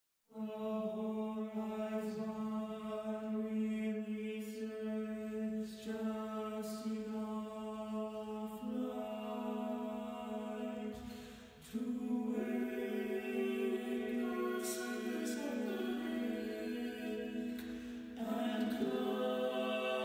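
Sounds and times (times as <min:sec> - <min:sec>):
male choir singing softly: 0:00.3 - 0:20.0.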